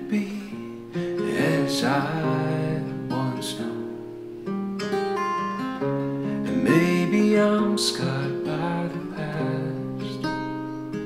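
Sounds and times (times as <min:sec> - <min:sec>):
acoustic guitar chords: 0:00.0 - 0:11.0.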